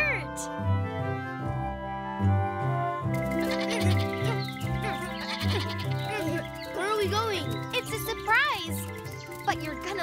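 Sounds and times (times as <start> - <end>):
background music: 0.0 - 10.0
cartoon lamb bleating: 3.4 - 6.4.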